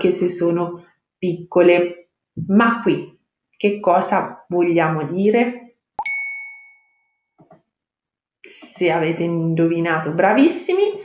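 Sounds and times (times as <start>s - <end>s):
bright chime ding: 6.0s - 7.2s.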